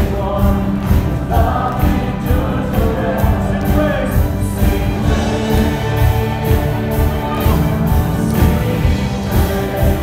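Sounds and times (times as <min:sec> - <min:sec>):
congregation singing a hymn: 0:00.0 - 0:10.0
instrumental accompaniment: 0:00.0 - 0:10.0.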